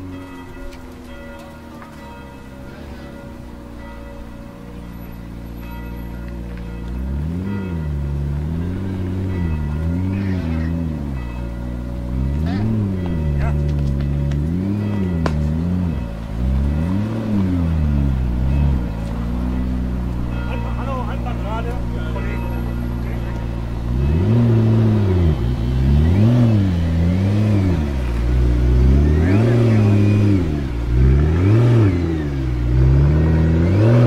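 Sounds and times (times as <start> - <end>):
car engine revving: 2.0 - 34.0.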